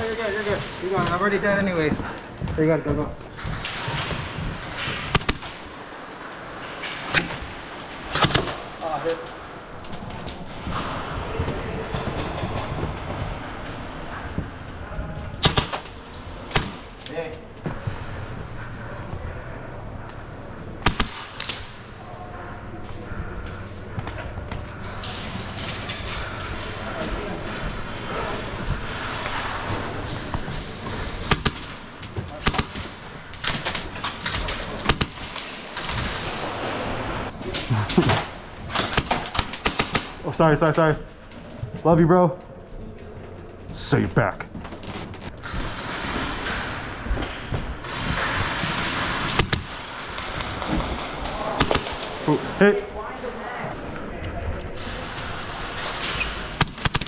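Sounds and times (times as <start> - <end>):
airsoft gunfire: 4.9 - 5.7, 15.4 - 16.9, 20.8 - 21.8, 31.2 - 36.2, 38.1 - 40.2, 48.4 - 52.2, 56.6 - 57.0.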